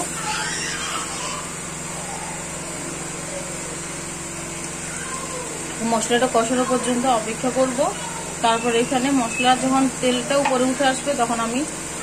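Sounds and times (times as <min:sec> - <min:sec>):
steady mechanical hum with hiss: 0:00.0 - 0:12.0.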